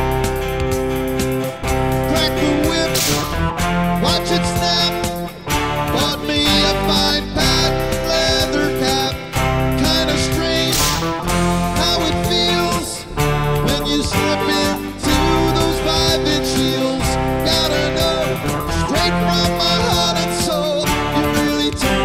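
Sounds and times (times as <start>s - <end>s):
electric guitar: 0.0s - 22.0s
rock band instrumental: 0.0s - 22.0s.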